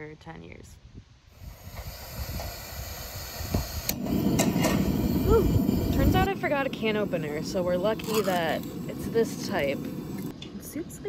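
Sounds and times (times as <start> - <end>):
gas hissing from stove burner: 1.3 - 10.3.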